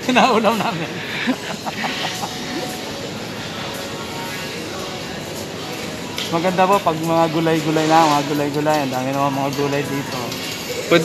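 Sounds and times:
supermarket hum and hiss: 0.0s - 11.0s.

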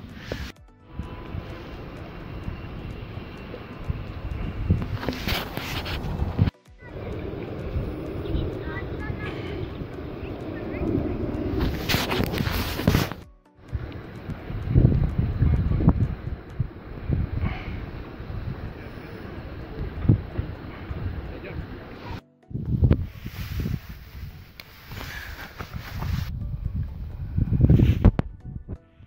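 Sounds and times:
wind buffeting microphone: 0.0s - 28.8s
rustling burst: 3.8s - 15.0s.

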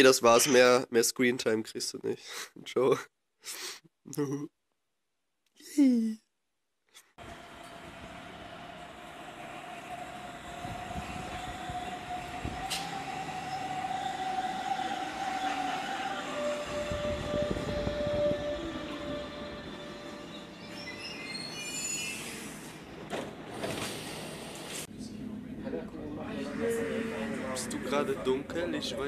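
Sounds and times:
brake squeals: 7.2s - 24.6s, 26.3s - 29.0s
electric train braking: 7.2s - 24.9s, 26.2s - 29.0s
steady train whine: 7.2s - 29.0s.

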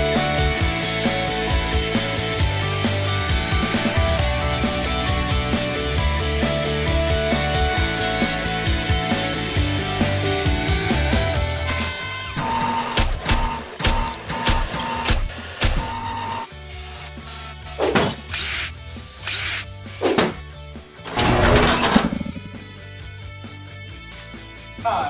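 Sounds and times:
sharp metallic clicks: 12.4s - 16.2s.

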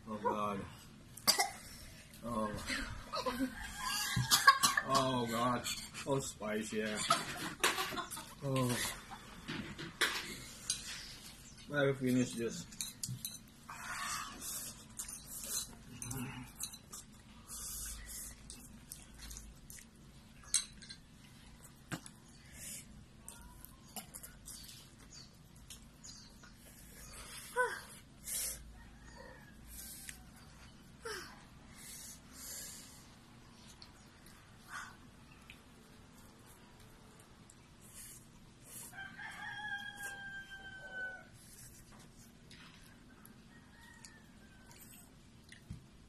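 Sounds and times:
rooster crowing: 3.2s - 4.6s, 28.8s - 30.2s, 38.9s - 41.4s, 43.3s - 45.1s.

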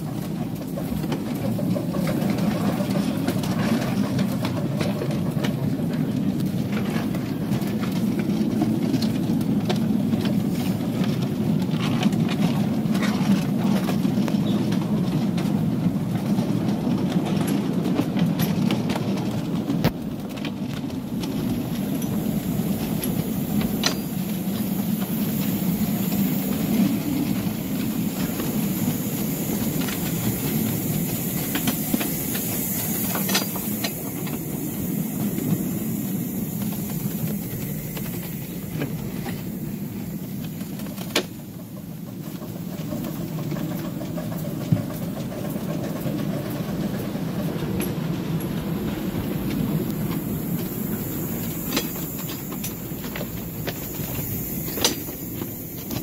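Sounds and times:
train wheels rumbling on track: 0.0s - 56.0s.

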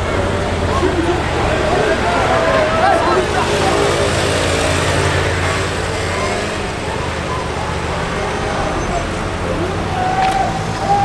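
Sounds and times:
street noise: 0.0s - 11.0s
voices: 0.0s - 11.0s.

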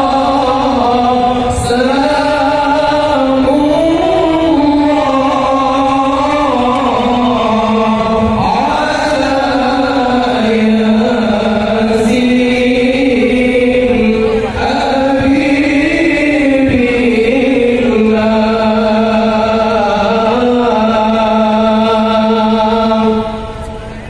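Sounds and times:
devotional chanting: 0.0s - 24.0s.

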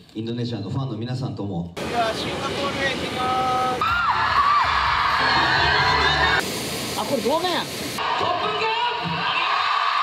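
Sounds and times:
crowd cheering and screaming: 3.6s - 6.4s, 8.0s - 10.0s.

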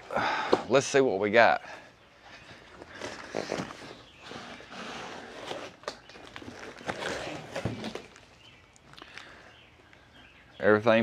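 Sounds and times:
cardboard and plastic rustling: 2.5s - 9.0s.

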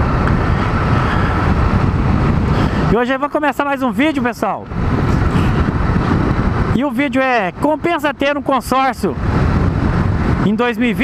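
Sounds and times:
wind noise on microphone: 0.0s - 11.0s.

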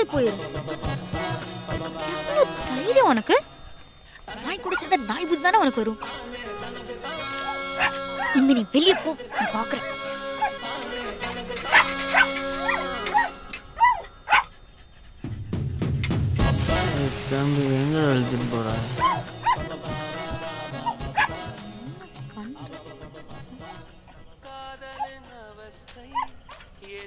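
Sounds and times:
dog barking: 4.3s - 5.0s, 7.4s - 10.6s, 11.6s - 14.6s, 19.0s - 19.7s, 20.8s - 21.6s, 25.0s - 25.2s, 26.1s - 26.7s
film score music: 15.2s - 24.0s.

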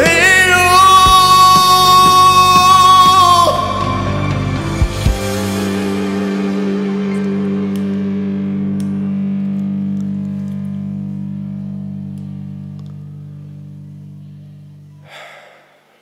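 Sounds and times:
ballad backing track chord: 0.0s - 15.0s.

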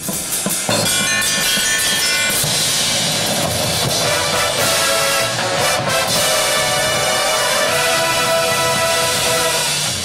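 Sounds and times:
cymbals: 0.0s - 10.0s
drum strikes: 0.0s - 10.0s
bugles holding loud chords: 3.9s - 10.0s.

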